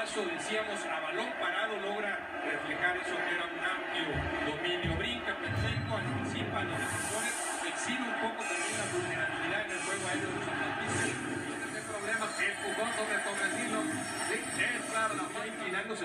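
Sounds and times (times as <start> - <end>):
music from television: 0.0 - 16.0
stadium crowd noise: 0.0 - 16.0.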